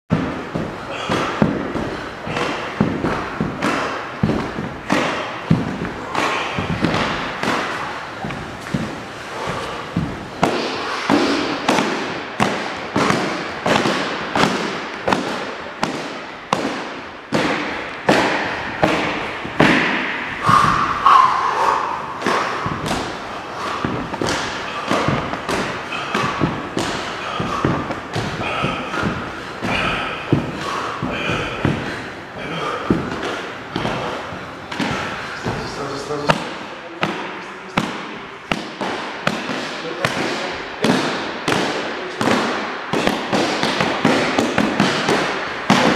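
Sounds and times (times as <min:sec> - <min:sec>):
sit-up thuds on wooden floor: 0:00.1 - 0:21.0, 0:22.1 - 0:45.9.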